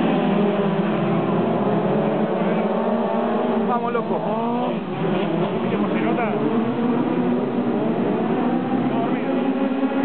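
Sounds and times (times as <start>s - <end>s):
race car engines droning: 0.0s - 10.0s.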